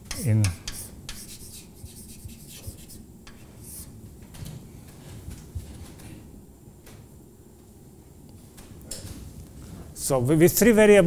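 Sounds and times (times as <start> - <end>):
chalk scratching on a blackboard: 0.1 - 4.0.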